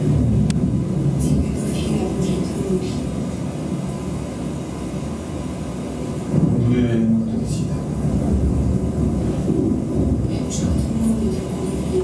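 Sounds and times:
low rumble from speakers: 0.0s - 12.0s.

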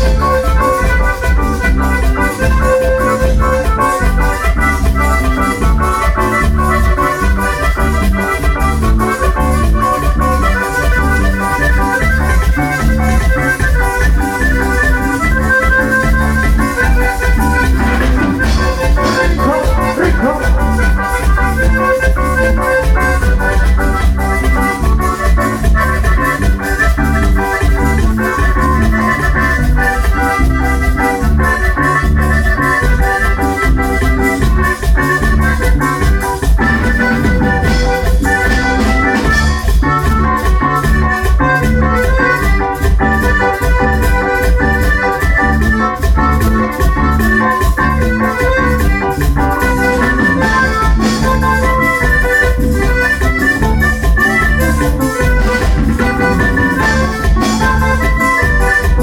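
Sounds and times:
live band playing through pa: 0.0s - 59.0s.

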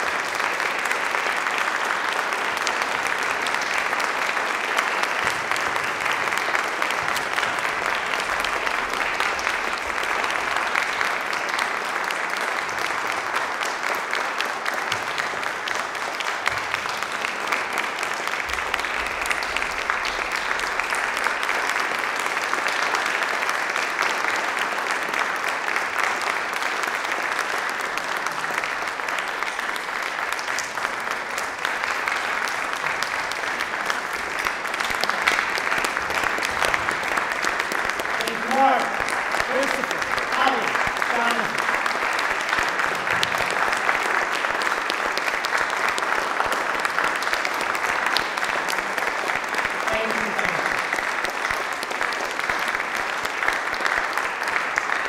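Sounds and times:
audience applauding: 0.0s - 55.0s.

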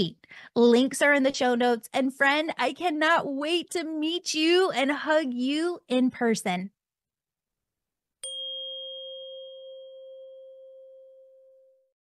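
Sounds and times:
chime ringing: 8.2s - 11.9s.

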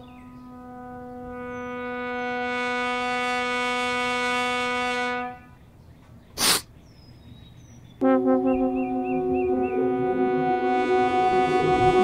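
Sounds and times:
sustained horn-like note: 0.0s - 5.4s, 8.0s - 12.0s.

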